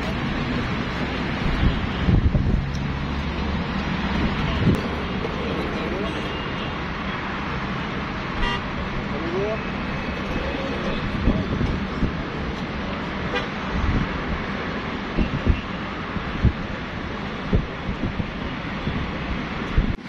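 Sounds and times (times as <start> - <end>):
road traffic: 0.0 - 20.0
car horns: 8.3 - 8.8.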